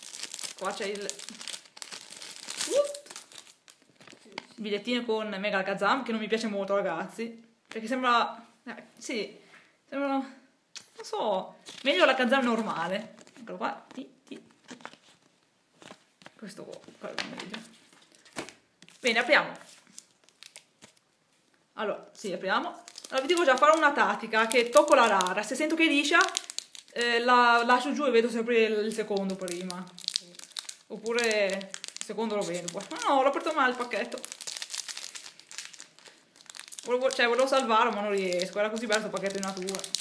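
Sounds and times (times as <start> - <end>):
foil wrapper crinkling: 0.0 - 4.4, 17.9 - 21.0, 22.8 - 27.8, 28.9 - 40.0.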